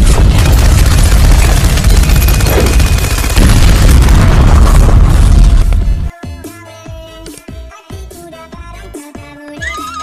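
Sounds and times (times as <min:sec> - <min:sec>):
explosion boom: 0:03.4 - 0:06.1.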